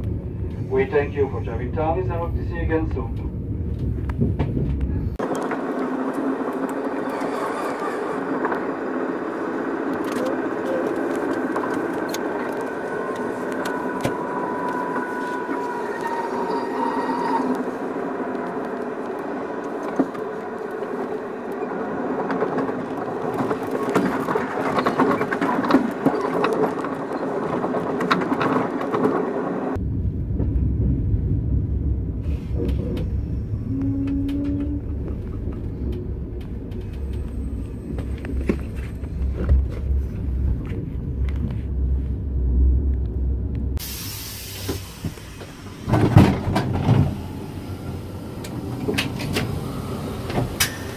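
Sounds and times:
deep low rumble: 0.0s - 5.3s, 29.8s - 43.9s
train carriage rumble: 0.0s - 50.9s.

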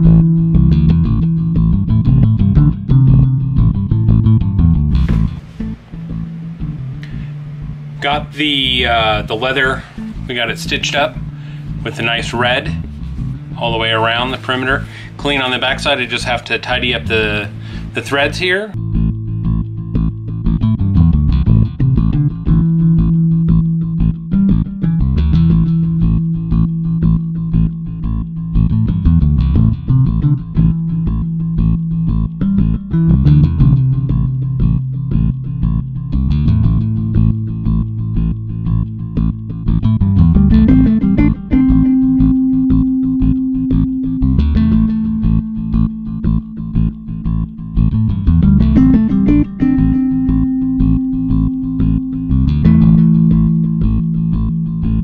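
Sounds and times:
background music with bass and guitar: 0.0s - 55.0s.

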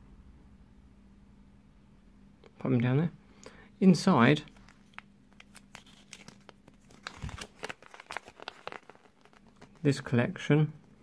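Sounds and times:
paper leaflet crinkling: 4.5s - 10.0s.

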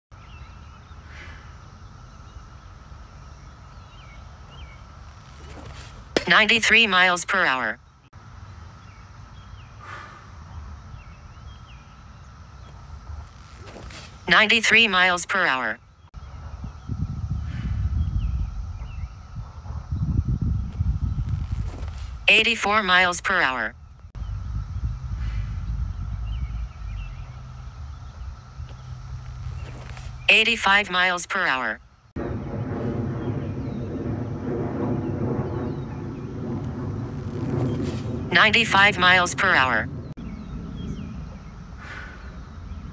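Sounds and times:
outdoor background noise: 0.1s - 42.9s
low uneven rumble: 23.7s - 30.3s, 32.1s - 42.9s
low drone like distant engine: 23.8s - 30.3s, 39.7s - 42.9s
faint bird chirps: 24.2s - 31.2s, 40.1s - 42.9s.

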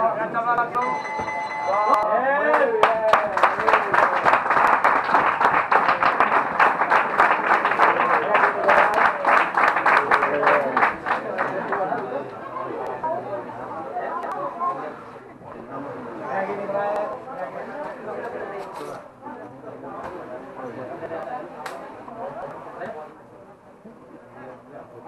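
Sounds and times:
timer beep: 0.8s - 2.2s
spectators clapping: 1.7s - 12.1s.

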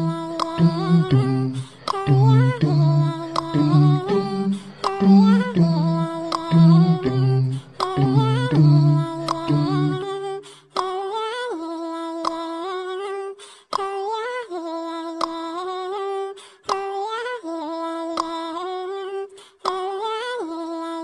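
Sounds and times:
lower musical accompaniment: 0.0s - 10.2s
wordless hummed vocal melody: 0.0s - 10.4s.

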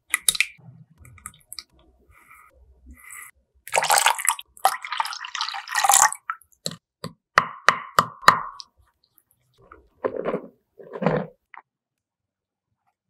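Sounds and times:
water pouring into bowl: 3.7s - 6.4s.

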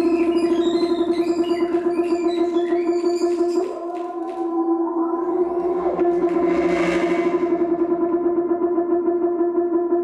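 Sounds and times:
fluttering drone tone: 0.0s - 9.4s.

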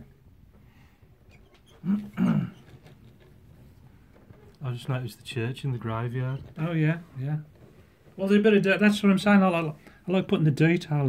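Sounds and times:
person coughing: 2.0s - 2.6s.

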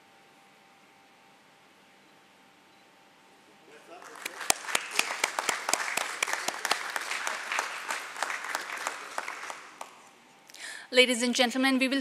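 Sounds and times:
hand claps applause: 3.8s - 10.2s.

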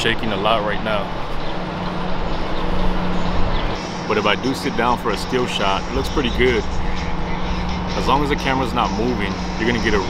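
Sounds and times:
urban street noise: 0.0s - 10.0s.

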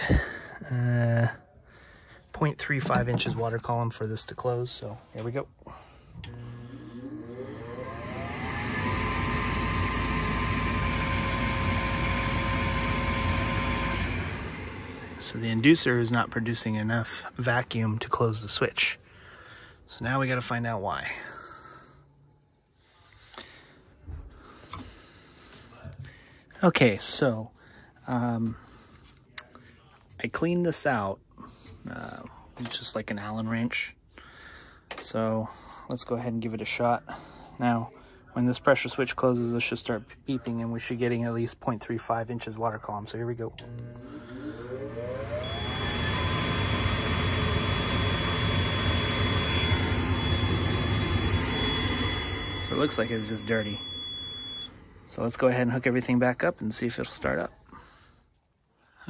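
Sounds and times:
knocks and clicks of handling parts: 2.7s - 3.5s
motor whining: 6.2s - 16.7s, 43.6s - 54.7s
steady high beep: 48.4s - 54.7s.

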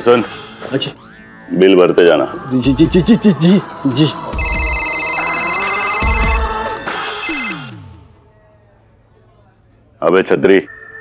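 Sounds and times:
phone ringtone: 4.4s - 7.8s.

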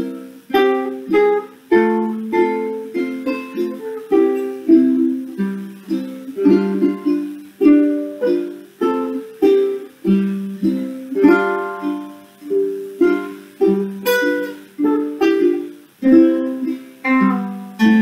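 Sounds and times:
acoustic guitar strumming: 0.0s - 18.0s
ukulele strumming: 0.0s - 18.0s.

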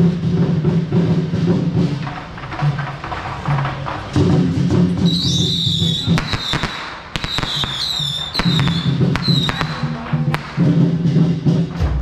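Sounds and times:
procession drums and music: 0.0s - 12.0s
firecrackers popping: 1.0s - 12.0s
high wavering whistle: 5.0s - 9.9s.

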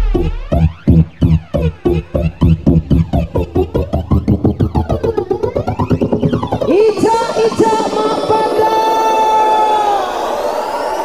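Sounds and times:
rising sweep effect: 2.0s - 11.0s
held high synth note: 3.7s - 11.0s.

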